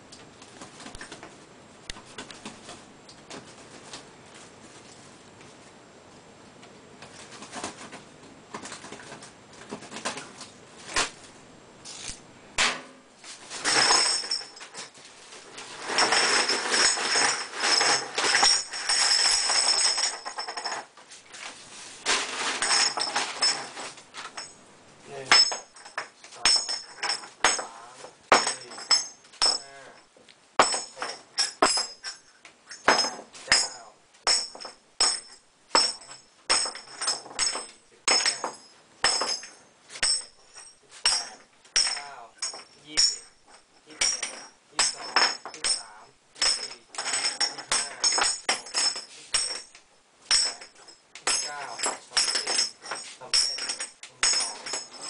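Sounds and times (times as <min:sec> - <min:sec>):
metal pieces clinking onto pile: 0:13.5 - 0:15.0, 0:15.6 - 0:20.9, 0:22.1 - 0:24.6, 0:25.2 - 0:29.8, 0:30.6 - 0:55.0
metal wing nuts clattering: 0:50.3 - 0:55.0.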